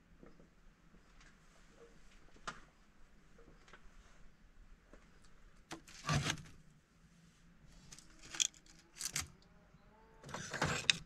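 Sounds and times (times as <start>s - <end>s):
wicker basket rustling rattle: 7.9s - 9.2s.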